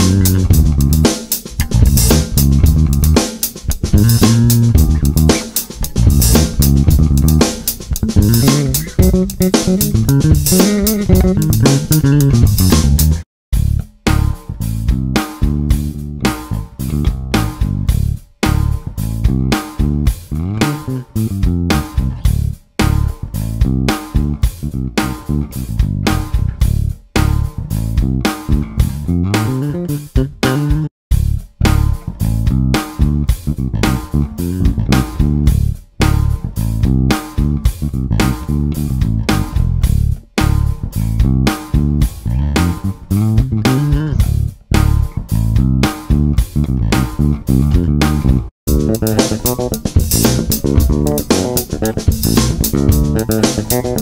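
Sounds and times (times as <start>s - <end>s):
electric bass plucked notes: 0.0s - 54.0s.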